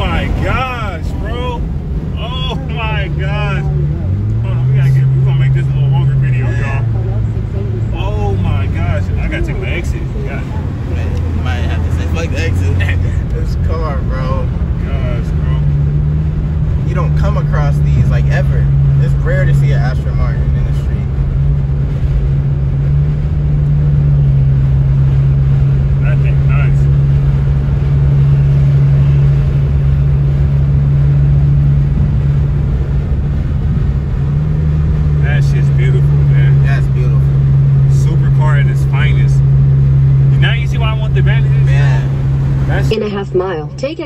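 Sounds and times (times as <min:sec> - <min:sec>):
car engine droning: 0:00.0 - 0:44.0
road rumble: 0:00.0 - 0:44.0.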